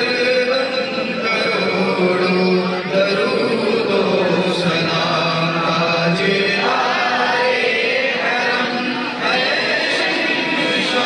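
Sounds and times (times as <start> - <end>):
men chanting together: 3.1 - 11.0.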